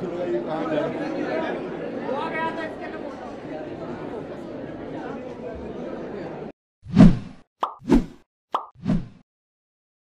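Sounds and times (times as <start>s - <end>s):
crowd chatter: 0.0s - 6.5s
cartoon pop sound effects: 7.6s - 7.9s, 8.5s - 8.8s.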